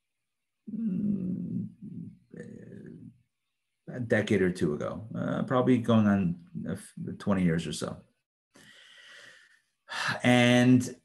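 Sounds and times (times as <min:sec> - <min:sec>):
man's low creaky throat hum: 0:00.7 - 0:03.1.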